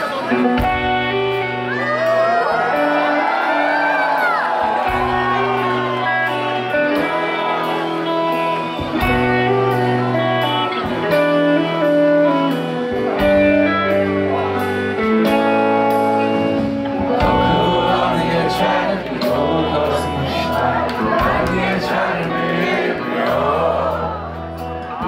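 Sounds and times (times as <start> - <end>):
electric guitar: 0.0 - 25.0
steady drum beat: 4.5 - 7.8, 8.4 - 10.2, 16.3 - 24.2
bass notes: 4.7 - 25.0.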